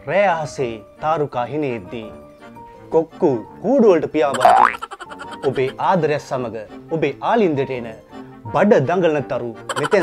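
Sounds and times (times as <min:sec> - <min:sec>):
quiet background music: 0:00.0 - 0:10.0
man talking: 0:04.0 - 0:04.6, 0:05.4 - 0:06.3, 0:09.7 - 0:10.0
upward-sliding boing: 0:04.4 - 0:04.8.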